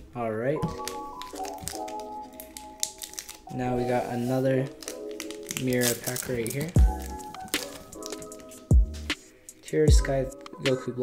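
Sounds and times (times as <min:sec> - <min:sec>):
foil pack crinkling: 0:00.6 - 0:08.7
synth chords music: 0:00.6 - 0:11.0.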